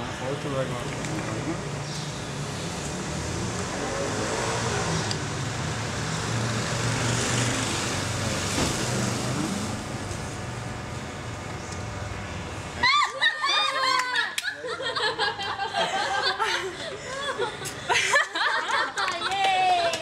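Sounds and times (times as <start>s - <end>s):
road traffic with engine hum: 0.0s - 20.0s.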